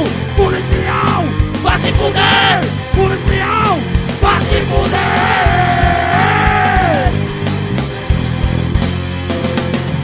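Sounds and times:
distorted guitar bass and drums: 0:00.0 - 0:10.0
yelled vocal: 0:00.3 - 0:07.2.

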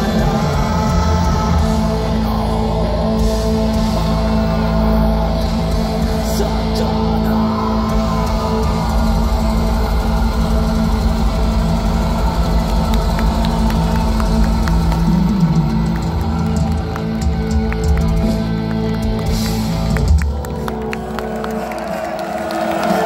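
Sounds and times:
crowd noise: 0:00.0 - 0:23.0
distorted guitars: 0:00.0 - 0:23.0
drums: 0:00.0 - 0:23.0.

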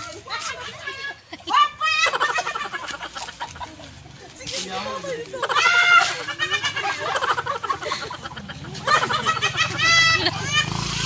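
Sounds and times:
men's voices and laughter: 0:00.1 - 0:10.7
man's high-pitched laugh: 0:05.4 - 0:11.0.

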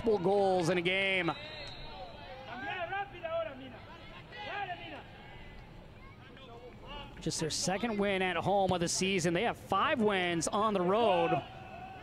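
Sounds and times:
faint stadium ambience: 0:00.0 - 0:12.0.

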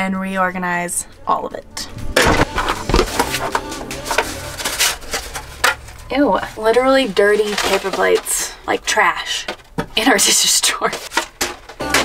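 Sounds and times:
paper plates rustling: 0:02.2 - 0:12.0
kitchen utensils knocking and clattering: 0:06.8 - 0:12.0.

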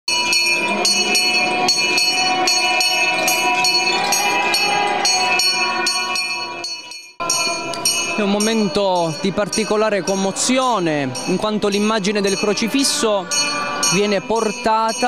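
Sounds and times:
bells ringing rapidly: 0:00.1 - 0:15.0.

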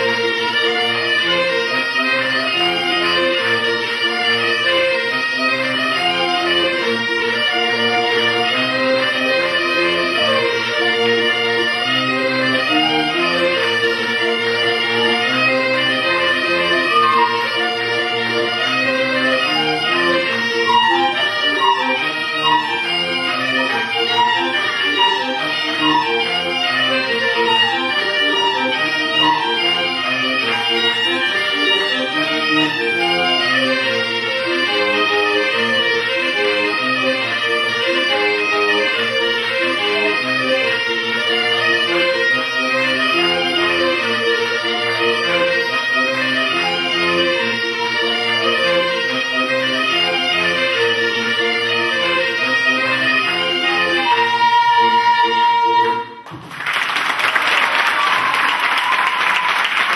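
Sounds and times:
accordion: 0:00.0 - 0:56.2
bagpipes with drone: 0:00.0 - 0:56.2
flute: 0:00.0 - 0:56.3, 0:57.6 - 0:59.9.

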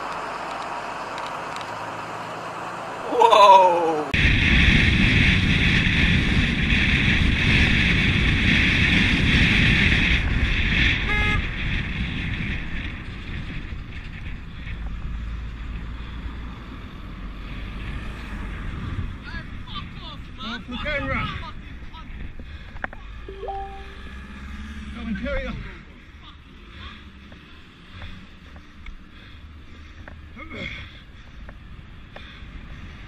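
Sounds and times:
vehicle rushing and rumbling: 0:00.0 - 0:03.1, 0:03.9 - 0:19.6, 0:24.0 - 0:33.0
brief tone: 0:23.3 - 0:24.6.

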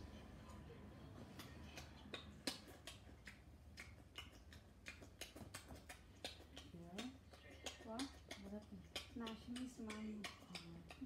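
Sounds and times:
open-mouthed chewing with lip smacks: 0:01.2 - 0:11.0.

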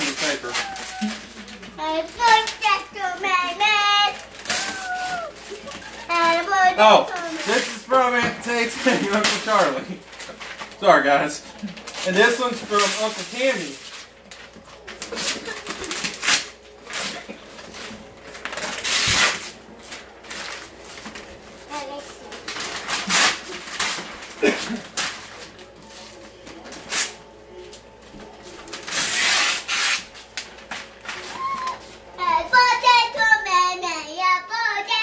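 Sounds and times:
wrapping paper tearing: 0:00.0 - 0:33.4.

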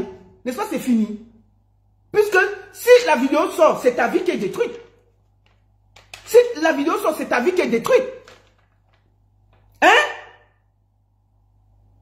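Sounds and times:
woman speaking: 0:00.0 - 0:01.4, 0:02.1 - 0:05.0, 0:06.2 - 0:08.3.

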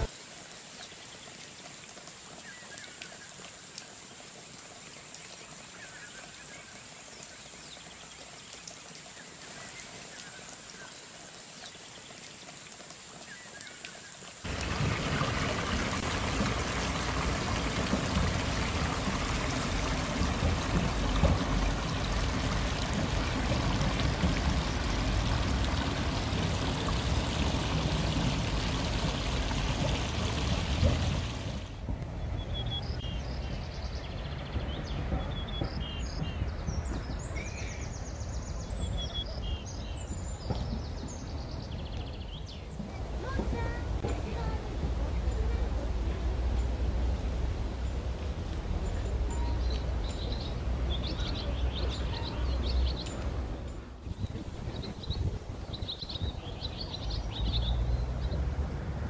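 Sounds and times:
water splashing over stone step: 0:00.0 - 0:32.0, 0:48.5 - 0:58.1.

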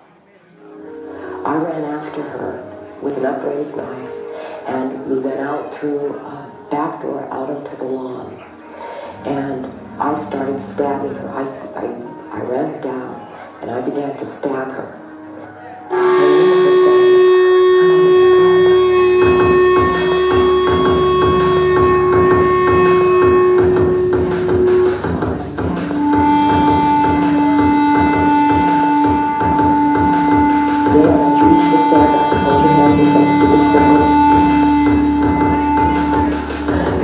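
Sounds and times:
distorted electric guitar: 0:15.9 - 0:37.0
drums and bass: 0:18.2 - 0:37.0.

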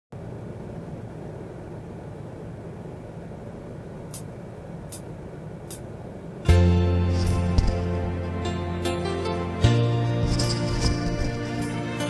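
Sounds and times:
low background rumble: 0:00.1 - 0:12.0.

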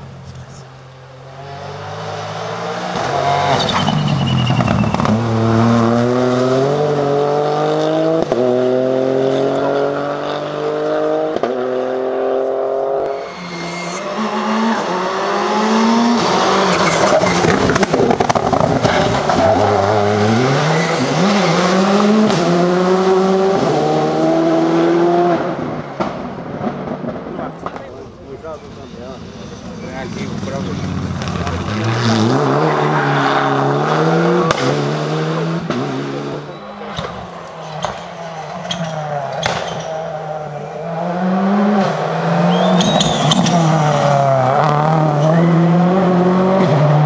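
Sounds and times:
rally car accelerating through gears: 0:00.8 - 0:27.8, 0:29.2 - 0:47.0.

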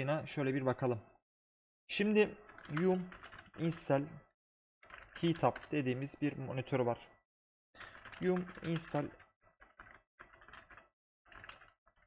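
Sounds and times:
keyboard keys clicking: 0:04.8 - 0:05.8.

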